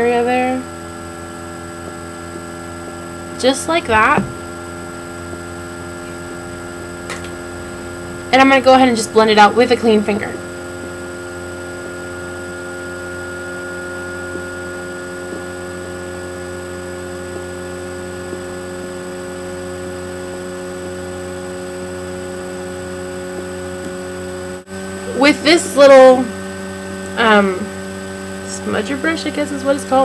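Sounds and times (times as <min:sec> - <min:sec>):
electrical hum: 0:00.0 - 0:30.0.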